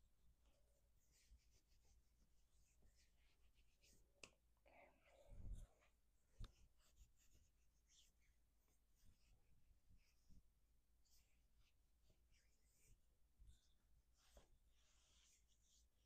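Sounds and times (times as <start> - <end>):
hands rustling on shirt sleeve: 0.4 - 4.2, 5.0 - 16.0.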